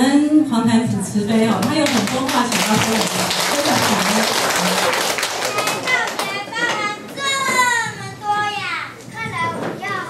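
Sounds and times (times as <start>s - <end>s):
young child speaking: 5.5s - 10.0s.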